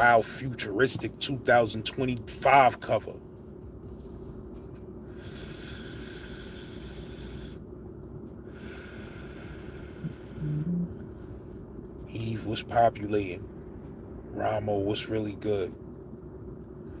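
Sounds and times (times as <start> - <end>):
low steady hum: 0.0 - 17.0
man inhaling smoke: 3.8 - 7.6, 8.4 - 10.5
man exhaling: 5.2 - 7.6, 8.6 - 10.9.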